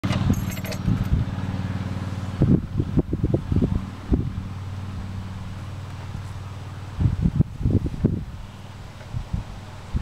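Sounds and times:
metallic jingle: 0.3 - 1.1.

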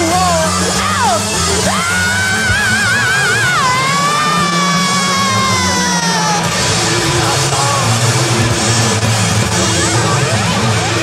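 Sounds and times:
man singing high wailing scream: 0.0 - 8.4
low organ and bass backing: 0.0 - 11.0.

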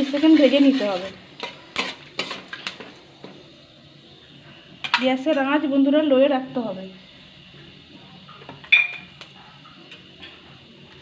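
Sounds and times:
spatula scraping metal pan: 0.0 - 2.8
spices sizzling in oil: 0.0 - 11.0.

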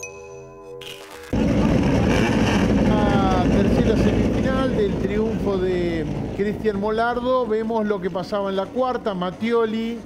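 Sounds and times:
racing car engines running: 1.4 - 10.0.

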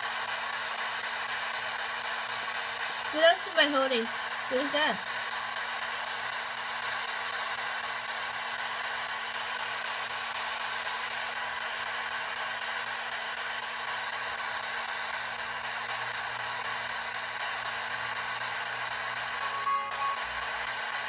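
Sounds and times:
radio static hiss: 2.8 - 8.1, 15.8 - 21.0.

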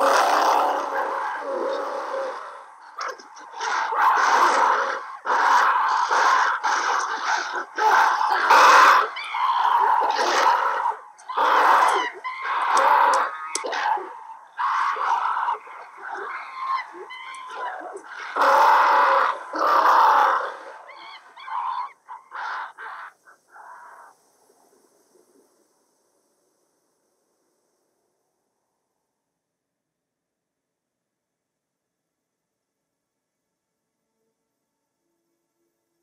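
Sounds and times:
ape-men shrieking and hooting: 0.0 - 24.2.

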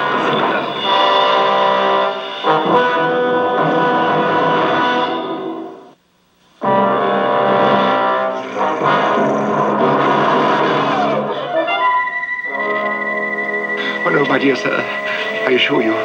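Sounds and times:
dramatic brass music on tv speaker: 0.0 - 6.0, 6.6 - 16.0.

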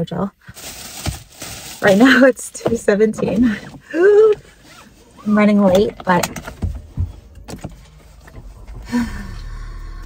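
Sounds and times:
faint low hum: 5.8 - 10.0.

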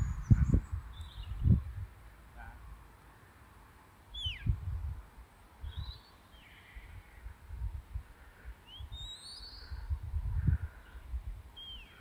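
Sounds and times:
wind buffeting microphone: 0.0 - 2.0, 4.2 - 6.0, 6.8 - 12.0.

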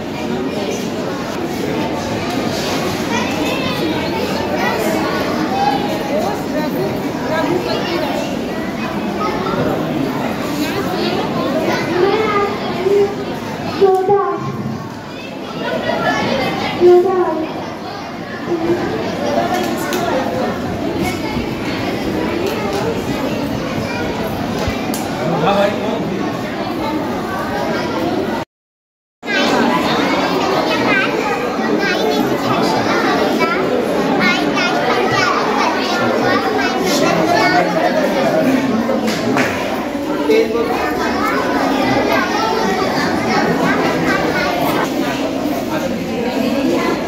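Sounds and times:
children chattering and calling out: 0.0 - 28.5, 29.2 - 47.0.

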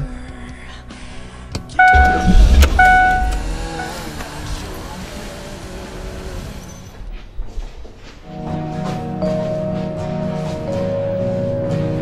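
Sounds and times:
car horn beeps: 1.8 - 4.6
car passing with deep rumble: 1.9 - 7.5.

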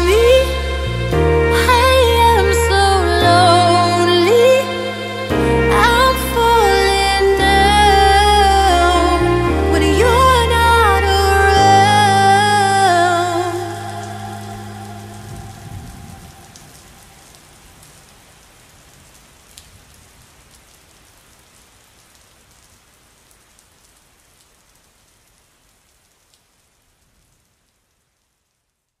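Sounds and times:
rain-like patter of noise: 12.0 - 29.0.

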